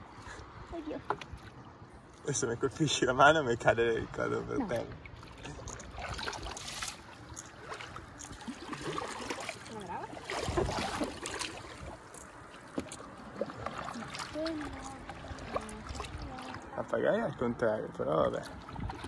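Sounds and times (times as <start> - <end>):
water lapping at board: 0.0 - 19.0
paddle pulling through water: 3.7 - 19.0.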